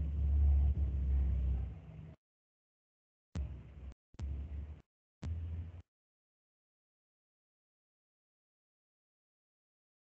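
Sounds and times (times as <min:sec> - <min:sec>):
low rumbling noise: 0:00.0 - 0:02.2.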